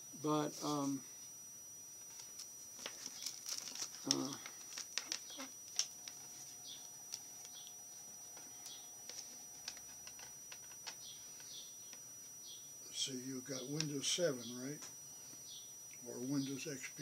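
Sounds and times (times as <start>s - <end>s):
small objects clicking on desk: 8.4s - 12.0s.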